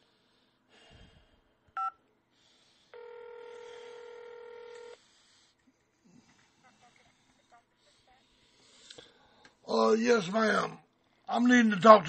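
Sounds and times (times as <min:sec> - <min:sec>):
telephone ringback tone: 0:03.0 - 0:05.0.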